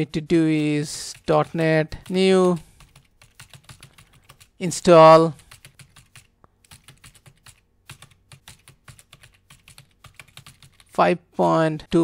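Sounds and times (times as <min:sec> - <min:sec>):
computer keyboard typing: 0:00.4 - 0:04.6, 0:05.4 - 0:11.0.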